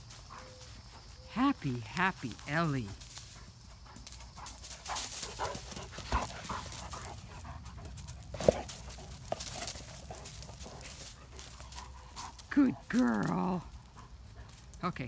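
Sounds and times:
dog panting: 0.0s - 14.8s
leaves crackling underfoot: 0.0s - 15.0s.

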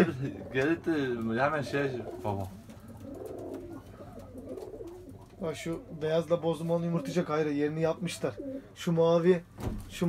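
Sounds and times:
pigeons cooing: 0.0s - 8.8s.

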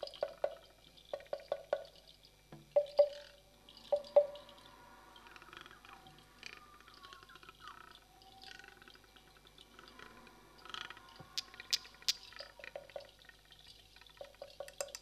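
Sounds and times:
soft dripping-like clicks: 0.0s - 5.3s, 6.9s - 15.0s
faint sliding tones: 2.5s - 14.0s.

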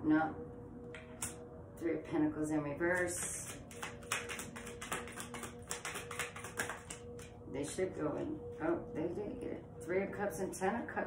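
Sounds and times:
cards being shuffled: 3.0s - 7.3s.

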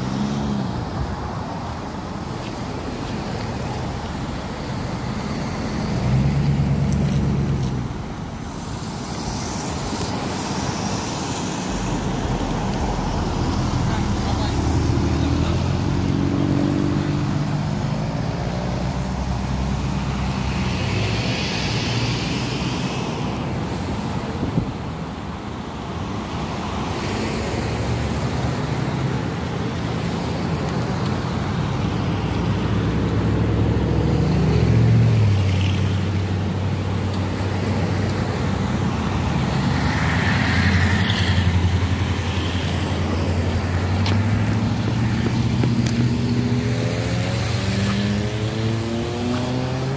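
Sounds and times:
vehicle engines humming: 0.0s - 49.9s
tyre noise: 39.6s - 49.9s.

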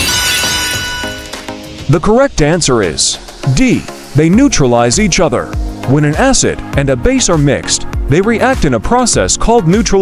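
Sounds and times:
glass-like crash: 0.0s - 1.5s
light background music: 0.0s - 10.0s.

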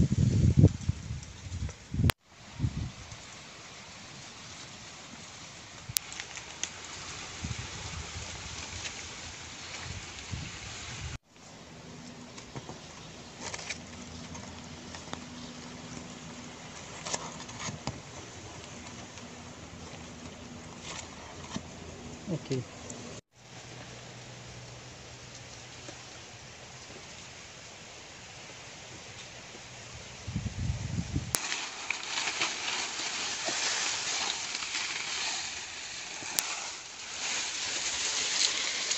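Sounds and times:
steady outdoor hiss: 0.0s - 38.9s.

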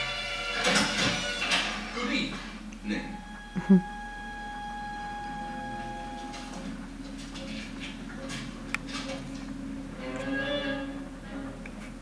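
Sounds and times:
faint mains hum: 0.0s - 12.0s.

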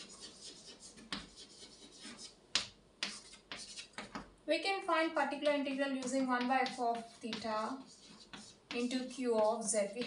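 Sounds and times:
chalk scratching on blackboard: 0.0s - 4.2s, 5.4s - 10.0s
chalk tapping on blackboard: 0.0s - 4.3s, 5.4s - 10.0s.

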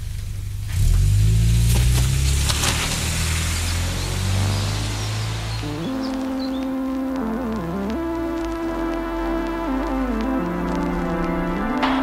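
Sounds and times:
deep sustained bass drone: 0.0s - 12.0s
airy noise swells: 3.1s - 12.0s
sharp electronic hits: 10.5s - 12.0s.

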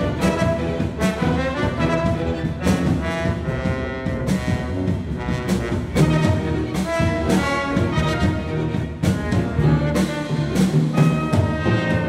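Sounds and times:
symphony orchestra playing: 0.0s - 12.0s.

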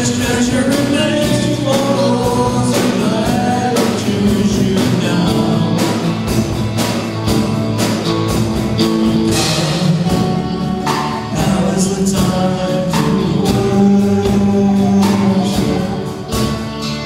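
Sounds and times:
people singing into microphones: 0.0s - 6.4s, 9.3s - 16.6s
drums: 0.0s - 17.0s
guitars: 0.0s - 17.0s
live band playing worship song: 0.0s - 17.0s.

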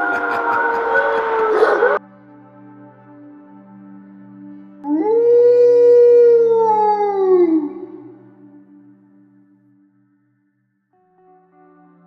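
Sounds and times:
dog howling: 0.0s - 2.0s, 4.8s - 8.5s
ambient music drone: 0.0s - 12.0s.

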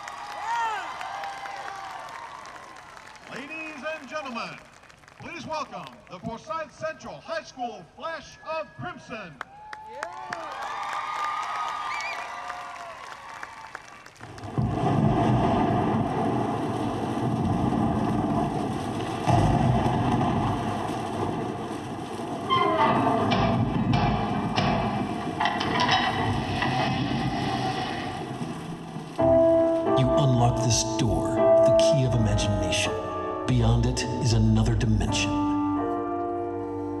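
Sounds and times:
rain-like hiss: 14.2s - 30.8s
sharp thunder cracks: 14.2s - 31.3s
thunder rumbling: 14.2s - 35.1s.

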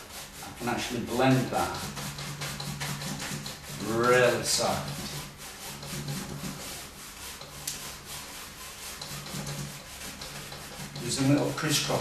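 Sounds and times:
paintbrush scrubbing on canvas: 0.0s - 12.0s.

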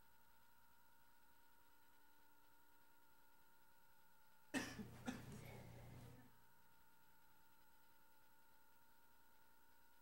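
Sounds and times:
faint steady hum: 0.0s - 10.0s
person coughing: 4.5s - 5.8s.

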